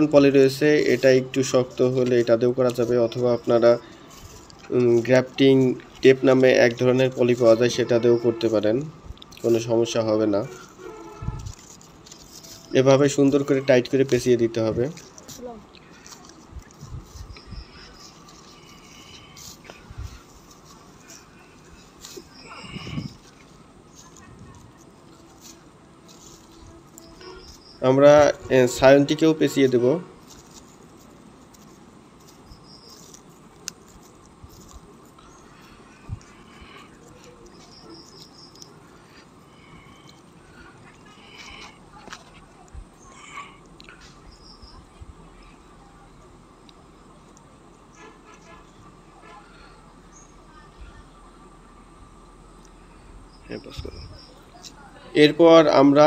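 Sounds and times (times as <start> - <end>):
man speaking: 0.0 - 3.9, 4.7 - 10.6, 12.7 - 15.0, 27.8 - 30.2, 53.5 - 54.1, 55.2 - 56.0
thin high tone: 0.0 - 30.7
plastic tape crackling rustle: 0.0 - 44.4
faint steady background: 0.0 - 56.0
insects chirring: 0.0 - 56.0.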